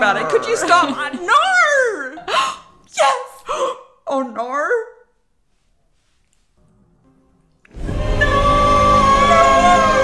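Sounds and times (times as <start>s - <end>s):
woman gasping and squealing: 2.2s - 2.8s, 3.4s - 3.9s.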